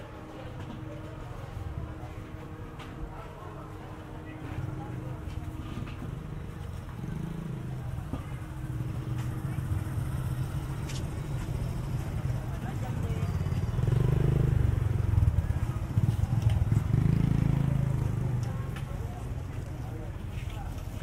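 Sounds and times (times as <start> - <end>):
voices: 0.0 - 21.0
small motorcycle engine running: 5.7 - 20.8.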